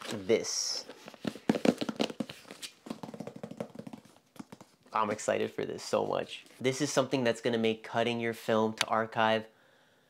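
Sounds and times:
fingertips tapping on cardboard box: 0:01.2 - 0:04.8.

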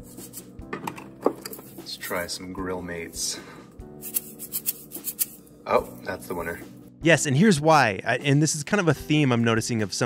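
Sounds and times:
seasoning rattling in shaken bottle: 0:04.0 - 0:05.5.

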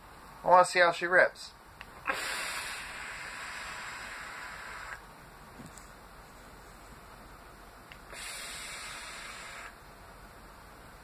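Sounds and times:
hiss of vape being drawn: 0:02.1 - 0:05.0, 0:08.0 - 0:09.8.

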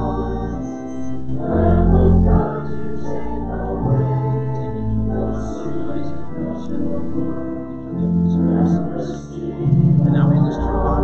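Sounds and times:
church organ chords: 0:00.0 - 0:11.0.

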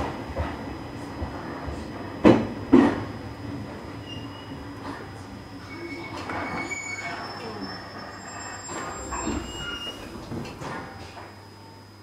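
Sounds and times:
train running rumble: 0:00.0 - 0:06.6, 0:07.2 - 0:11.3
train brakes squealing: 0:04.0 - 0:04.6, 0:05.6 - 0:10.2.

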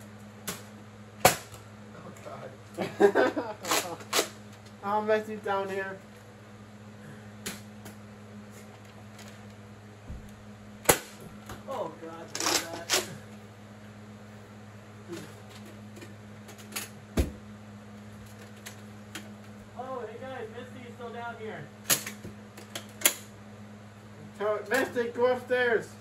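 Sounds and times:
steady low hum: 0:00.0 - 0:26.0.

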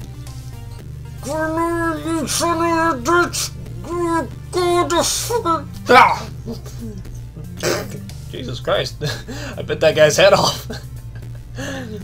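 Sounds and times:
background music: 0:00.0 - 0:12.0
man straining vocally: 0:01.2 - 0:08.2, 0:11.5 - 0:12.0.

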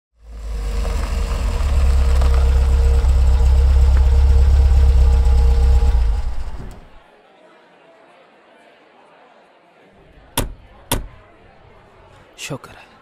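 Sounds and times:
truck diesel engine idling: 0:00.2 - 0:07.0.

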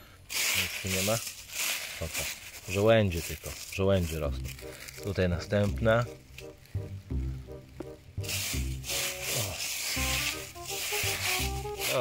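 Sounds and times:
leaf litter rustling under hand: 0:00.2 - 0:07.2, 0:08.0 - 0:12.0
background music low notes: 0:03.0 - 0:12.0.

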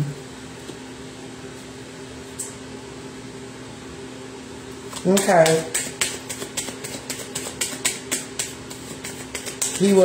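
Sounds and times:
cards being shuffled: 0:04.9 - 0:10.0.

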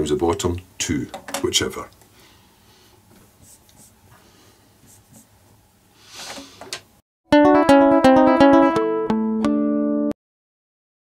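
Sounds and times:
marker pen strokes on paper: 0:03.3 - 0:05.4.

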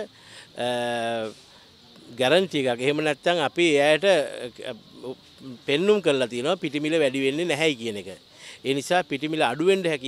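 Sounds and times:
man speaking: 0:00.0 - 0:01.4, 0:02.0 - 0:10.0
faint insect chirping: 0:00.0 - 0:10.0.

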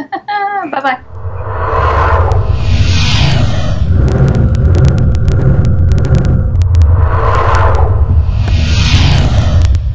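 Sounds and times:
deep rumble: 0:01.0 - 0:09.9.

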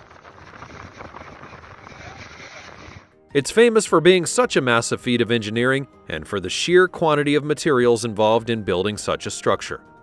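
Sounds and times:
wind: 0:00.0 - 0:03.2.

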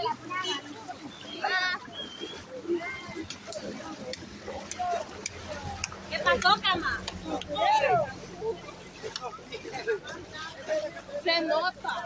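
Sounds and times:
people talking faintly: 0:00.0 - 0:12.0.

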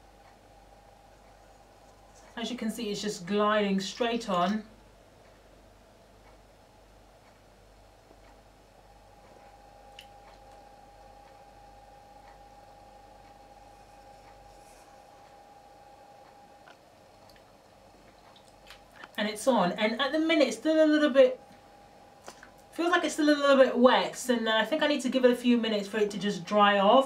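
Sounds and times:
faint steady hum: 0:00.0 - 0:27.0.

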